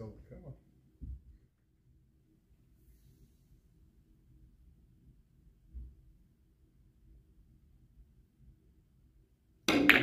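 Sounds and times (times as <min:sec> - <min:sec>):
billiard balls clicking: 0:09.7 - 0:10.0.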